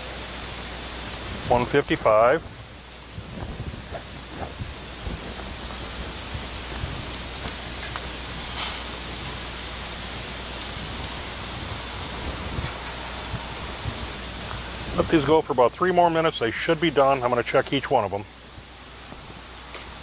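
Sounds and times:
meat sizzling on a grill: 0.0s - 20.0s.

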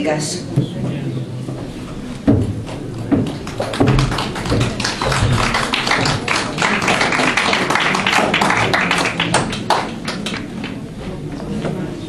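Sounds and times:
people applauding: 2.8s - 10.9s.

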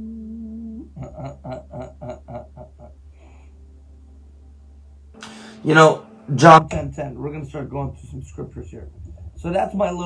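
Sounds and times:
man laughing: 0.8s - 3.1s.

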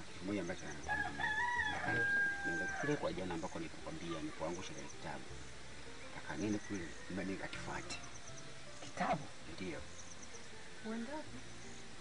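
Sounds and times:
rooster crowing: 0.8s - 3.1s.

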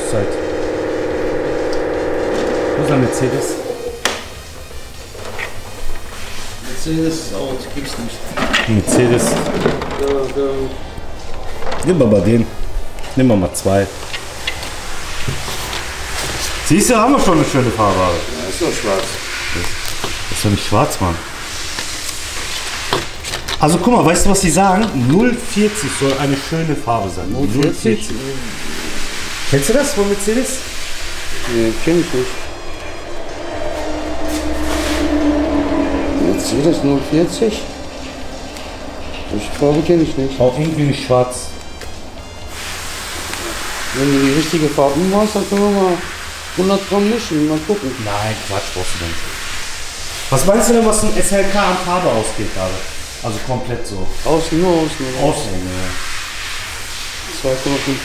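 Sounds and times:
workshop background hiss: 0.0s - 33.2s, 36.4s - 58.0s.

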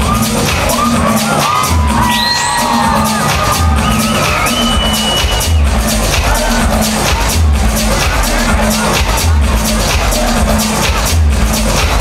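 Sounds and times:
bass-heavy electronic dance music: 0.0s - 12.0s
crowd noise: 0.0s - 12.0s.

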